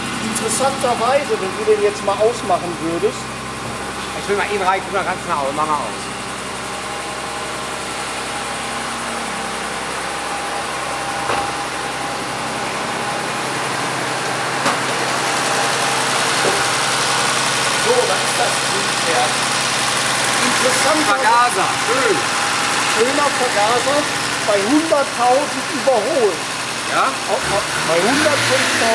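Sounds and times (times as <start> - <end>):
car engine idling: 0.0 - 28.9.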